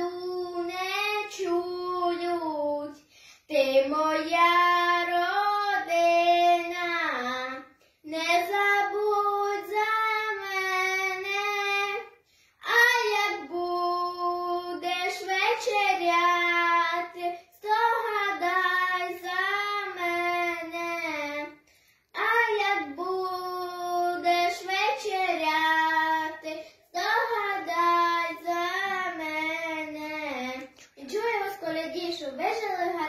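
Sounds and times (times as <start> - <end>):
girl singing unaccompanied: 0.0 - 33.0.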